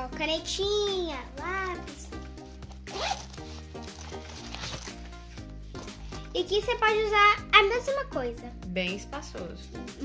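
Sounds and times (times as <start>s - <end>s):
background music: 0.0s - 10.0s
zipper pulled open: 2.6s - 5.0s.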